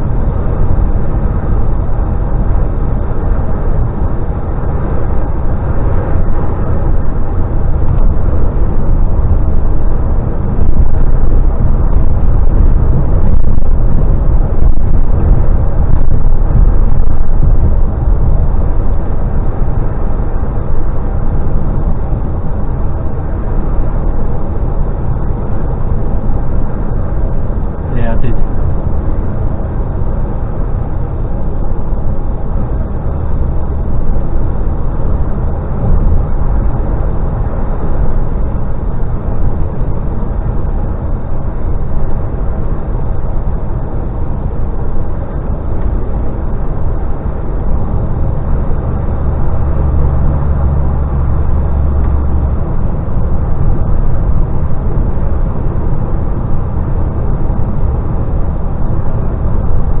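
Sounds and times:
deep hum: 0.0 - 60.0
lorry engine drone: 0.0 - 60.0
tyre and road rumble: 0.0 - 60.0.

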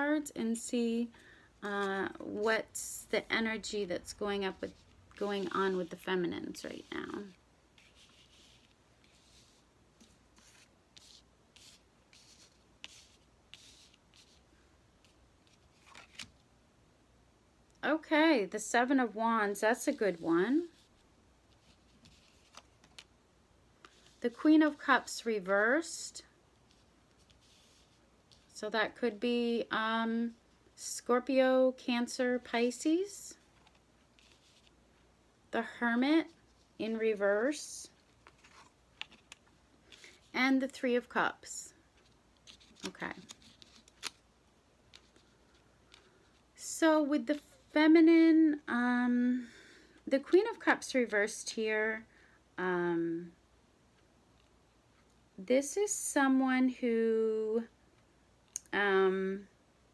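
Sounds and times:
cards sliding on cloth: 4.6 - 16.3, 19.9 - 23.1, 26.6 - 28.5, 33.5 - 34.8.

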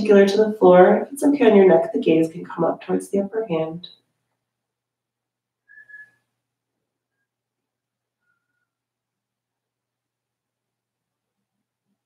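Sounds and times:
high whistling tones: 5.6 - 6.3.

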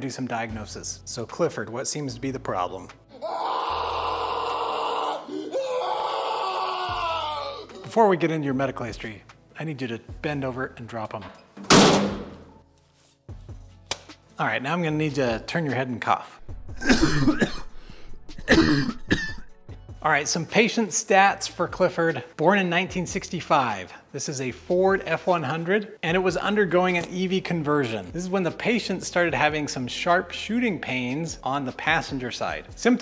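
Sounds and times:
background music: 0.0 - 33.0
strained pained moans: 3.1 - 7.9
person coughing: 16.8 - 19.5.

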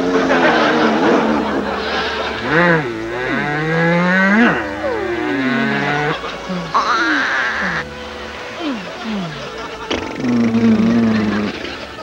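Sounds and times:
comic sliding tones: 0.2 - 7.9.

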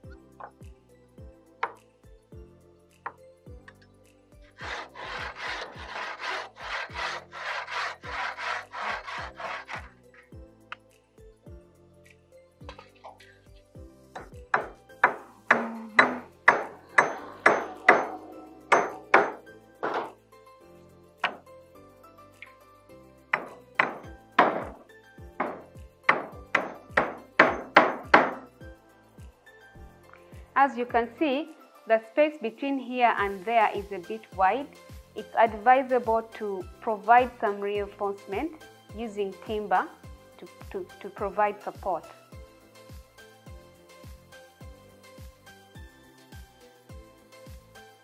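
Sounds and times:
background music: 0.0 - 48.0
hacksaw cutting timber: 4.6 - 10.0, 14.6 - 18.1, 18.7 - 20.1, 25.4 - 28.4
hammer driving nail into wood: 23.3 - 24.8, 25.4 - 28.5.

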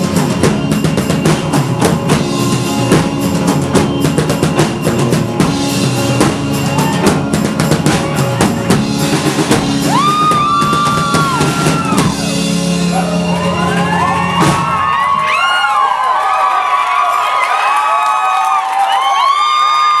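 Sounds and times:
live rock band playing: 0.0 - 15.7.

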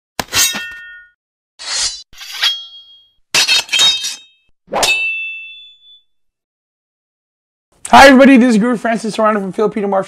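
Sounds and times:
metallic ding: 2.2 - 6.1.

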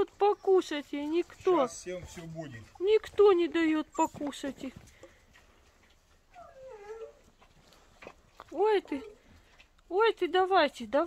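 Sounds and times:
puppy whining: 0.0 - 4.6, 6.0 - 8.1.

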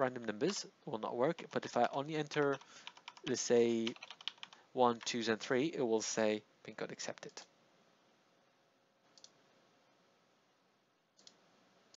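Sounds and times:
computer mouse clicks: 9.1 - 9.4, 11.2 - 11.4.

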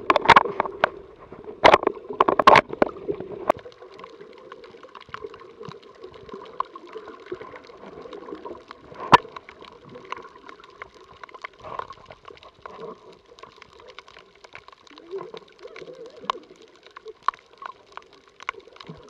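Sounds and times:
muffled underwater rush: 0.0 - 19.0
sharp clicks and crackles: 0.0 - 19.0.

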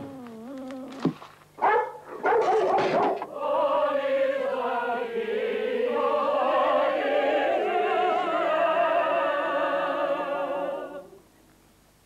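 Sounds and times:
dog barking: 1.6 - 3.3.

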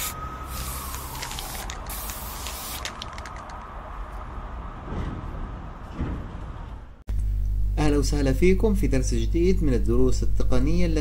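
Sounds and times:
spray-paint can hissing: 0.0 - 3.4.

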